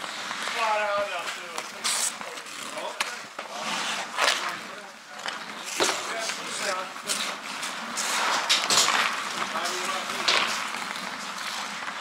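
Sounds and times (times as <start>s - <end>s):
skate blades scraping ice: 0.0s - 12.0s
stick hitting puck: 4.2s - 4.6s, 7.0s - 12.0s.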